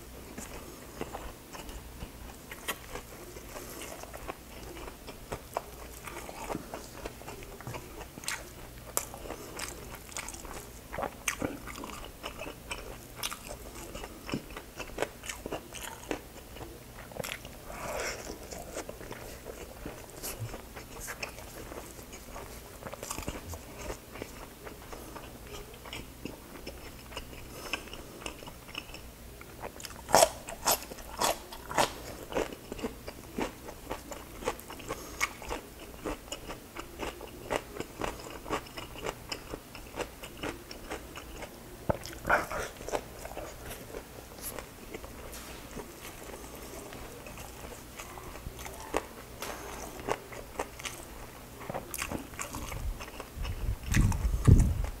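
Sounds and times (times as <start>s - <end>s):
crunchy chewing: 0.3s - 55.0s
wet mouth sounds: 51.7s - 54.9s.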